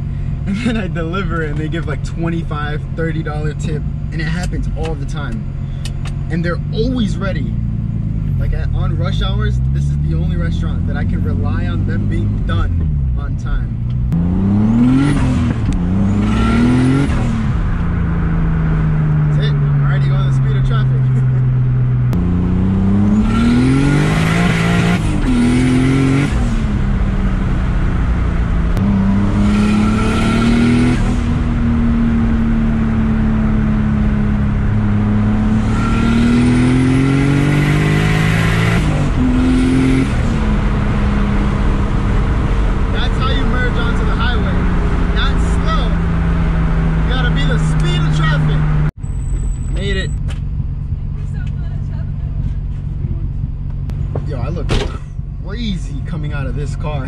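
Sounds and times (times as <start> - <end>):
car engine accelerating through gears: 0.0 - 49.0.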